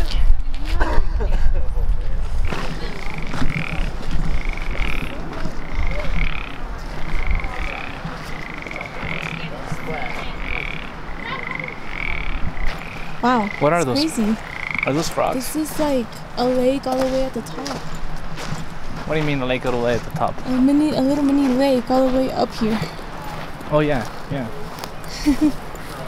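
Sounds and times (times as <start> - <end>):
frogs calling: 2.4 - 18.8.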